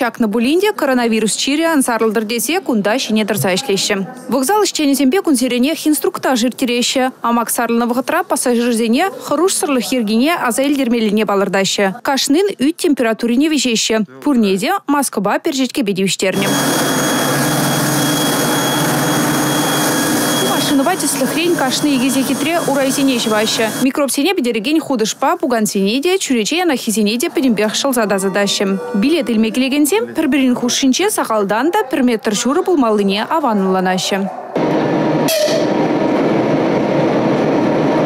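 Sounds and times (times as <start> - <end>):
floor scrubber humming: 16.4 - 23.8.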